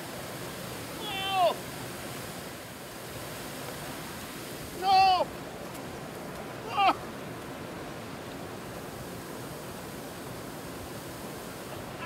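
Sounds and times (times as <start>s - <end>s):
man's excited exclamations: 1.0s - 1.6s, 4.8s - 5.3s, 6.6s - 7.0s.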